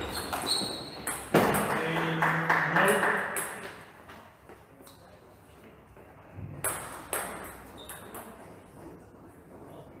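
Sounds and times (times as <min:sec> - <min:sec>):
table tennis ball bouncing: 0:00.0 - 0:02.2, 0:02.9 - 0:03.8, 0:06.4 - 0:08.4.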